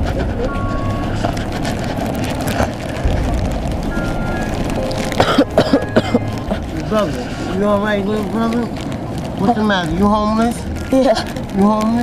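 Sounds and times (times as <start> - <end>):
traffic running past: 0.0 - 12.0
voices of passers-by: 0.0 - 12.0
short high tones: 3.8 - 6.5.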